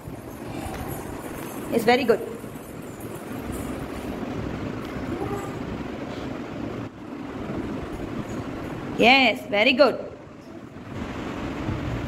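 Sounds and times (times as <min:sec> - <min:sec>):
low rumbling room noise: 0:00.0 - 0:12.0.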